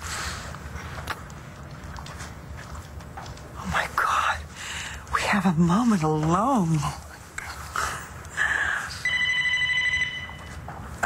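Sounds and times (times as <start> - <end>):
telephone ringing: 9.0 - 10.7.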